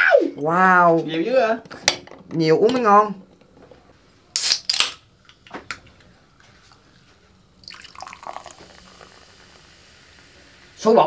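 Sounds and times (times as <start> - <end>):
soda can opening crack and hiss: 4.3 - 5.8, 8.2 - 10.8
soda pouring and fizzing: 7.6 - 11.0.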